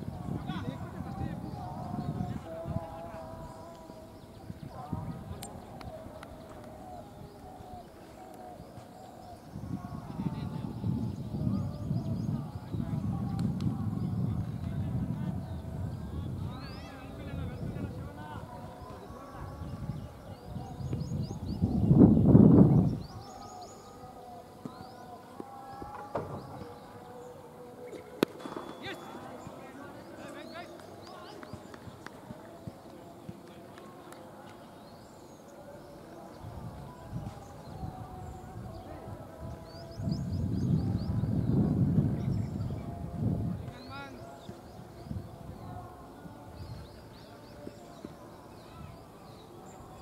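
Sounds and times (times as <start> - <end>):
wind rumble on microphone: 0.0 - 23.7, 35.6 - 50.0
birds chirping: 0.0 - 50.0
faint voices: 0.0 - 50.0
distant players calling: 22.9 - 40.4.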